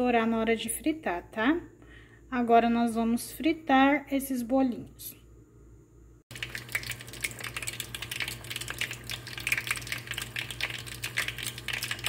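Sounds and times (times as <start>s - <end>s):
steady low hum: 0.0s - 12.0s
oil crackling and popping: 6.3s - 12.0s.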